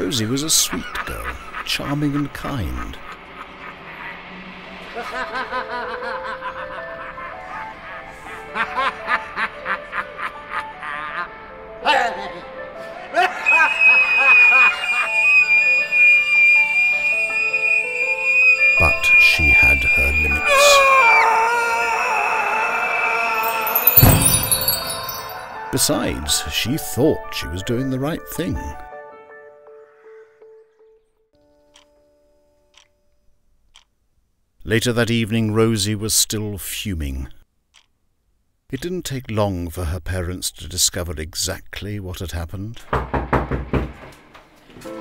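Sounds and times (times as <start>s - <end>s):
man screaming high-pitched: 19.1s - 24.0s
heavy knocks on wooden door: 42.9s - 44.1s.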